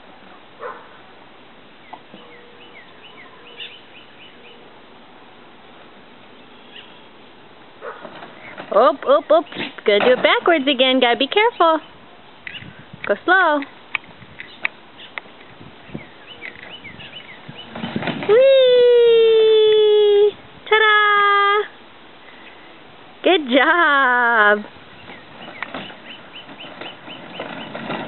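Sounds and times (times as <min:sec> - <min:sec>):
small bird chirping: 0:01.8 - 0:04.6, 0:06.4 - 0:07.2, 0:15.8 - 0:17.8, 0:24.9 - 0:27.8
plastic toy car clattering on track: 0:26.7 - 0:28.0.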